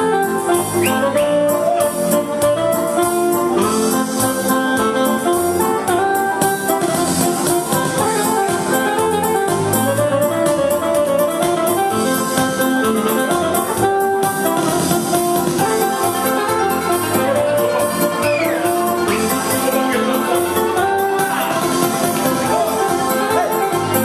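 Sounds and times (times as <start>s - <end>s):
instrumental dance music: 0.0s - 24.0s.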